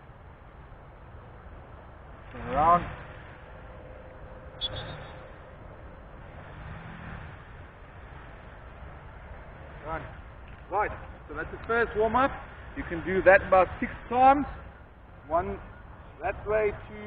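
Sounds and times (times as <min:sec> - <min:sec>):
steady low background noise: 0:00.0 - 0:17.0.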